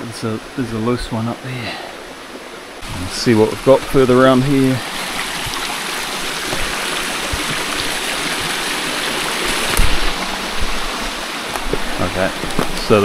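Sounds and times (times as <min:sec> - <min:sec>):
stream splashing over rocks: 0:00.5 - 0:13.0.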